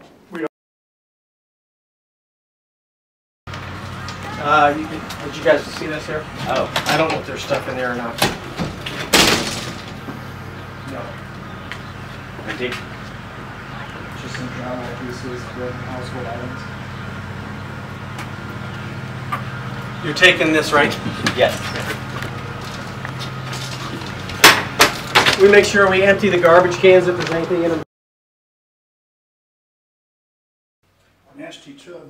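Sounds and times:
steady low hum: 3.5 - 27.8
door bang: 8.1 - 10.2.

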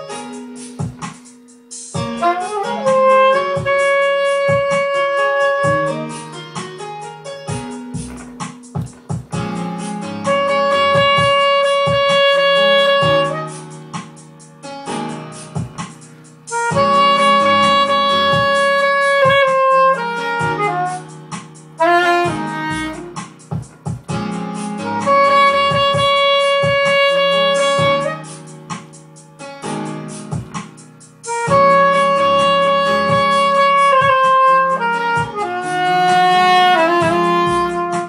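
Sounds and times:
soprano saxophone ballad: 2.0 - 14.0, 16.4 - 30.3, 31.2 - 38.0.

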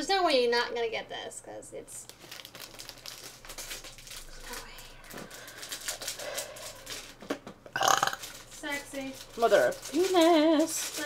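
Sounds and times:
snack package crinkling: 2.0 - 11.0.

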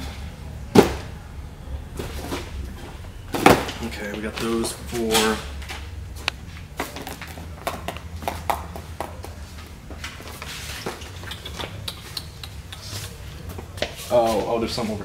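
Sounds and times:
low hum: 0.0 - 10.2.

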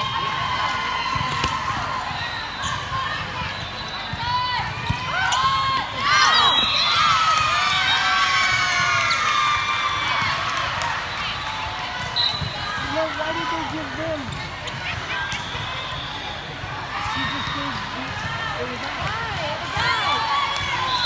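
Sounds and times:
balls bouncing on wooden court: 2.6 - 6.6, 11.8 - 15.7, 17.1 - 20.9.

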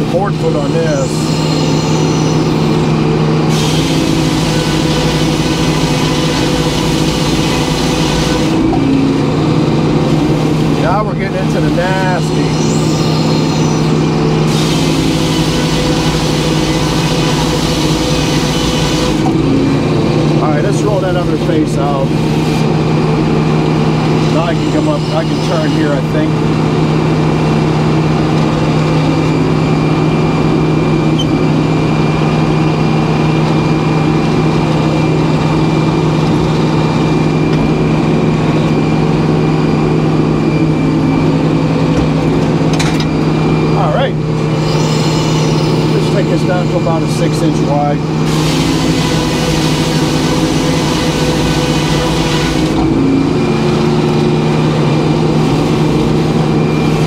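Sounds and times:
circular saw cutting wood: 0.0 - 8.7, 10.3 - 19.4, 23.9 - 26.6, 44.5 - 57.0
sawmill power unit humming: 0.0 - 57.0.

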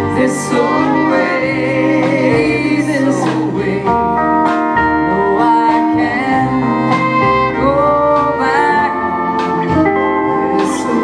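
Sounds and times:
acoustic guitar: 0.0 - 11.0
double bass: 0.0 - 11.0
drums: 0.0 - 11.0
steel guitar: 0.0 - 11.0
fiddle: 6.0 - 11.0.

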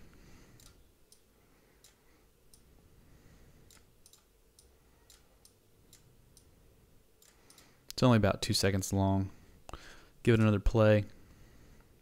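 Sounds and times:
computer mouse clicks: 3.7 - 6.5, 7.2 - 7.7.

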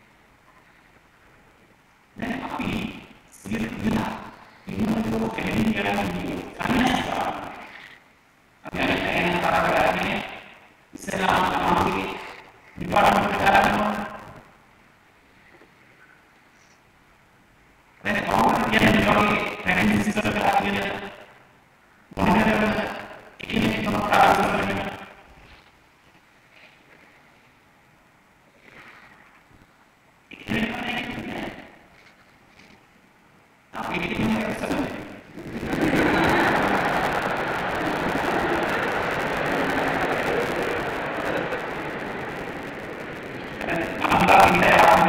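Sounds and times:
man speaking over public address: 2.2 - 7.8, 8.6 - 14.4, 18.0 - 21.3, 22.1 - 25.2, 30.3 - 31.8, 33.8 - 36.9, 43.4 - 45.0
audience applauding: 33.9 - 45.0.

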